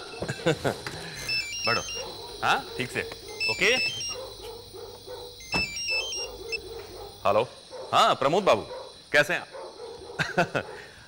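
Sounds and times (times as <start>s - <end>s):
mobile phone ringing: 1.1s - 2.2s, 3.3s - 4.2s, 5.4s - 6.6s.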